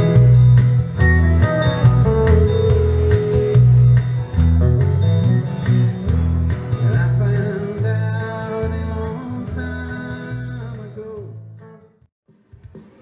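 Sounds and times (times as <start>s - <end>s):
pulsing bass line: 0.0s - 10.8s
electric guitar playing: 0.0s - 11.0s.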